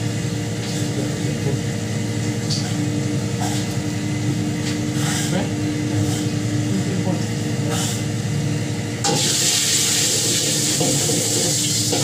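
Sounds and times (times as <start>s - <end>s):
kitchen equipment humming: 0.0s - 12.0s.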